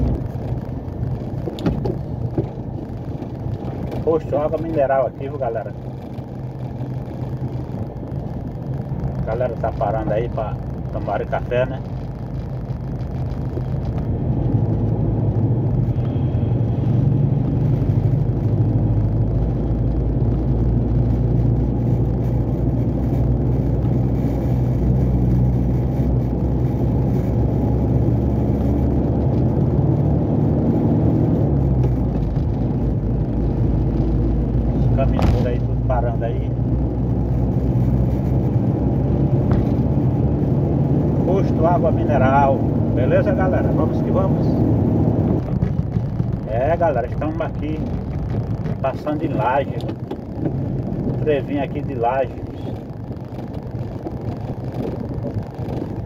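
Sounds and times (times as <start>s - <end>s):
truck diesel engine droning: 11.8s - 56.0s.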